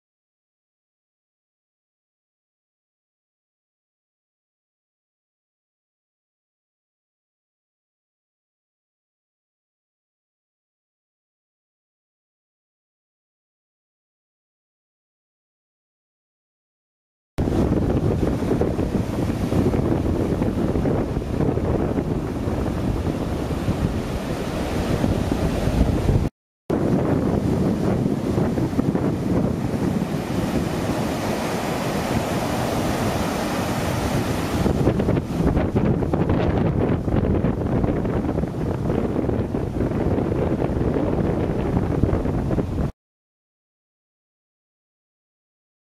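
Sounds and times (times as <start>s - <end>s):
surf breaking on a beach: 17.4s - 42.9s
wind buffeting the microphone: 17.4s - 42.9s.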